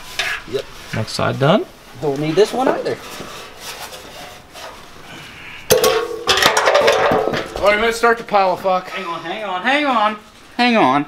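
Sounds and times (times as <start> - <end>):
metal muffler scraping: 0.0 - 9.5.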